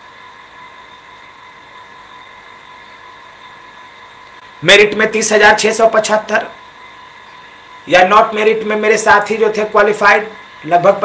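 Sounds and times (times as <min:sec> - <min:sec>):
faint high whining tones: 0:00.0 - 0:11.0
room hiss: 0:00.0 - 0:11.0.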